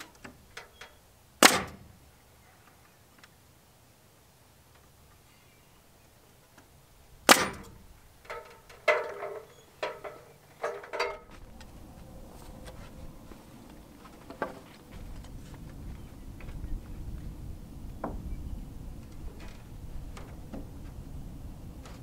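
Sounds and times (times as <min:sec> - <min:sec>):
sharp wooden crack: 0:01.4 - 0:01.9, 0:07.2 - 0:09.4
ringing wooden knocks: 0:07.3 - 0:11.3
low rumble: 0:11.2 - 0:22.0.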